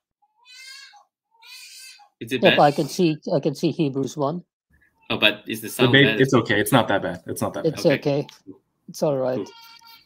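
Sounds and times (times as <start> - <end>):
baby crying: 0.2 - 3.0, 9.4 - 10.0.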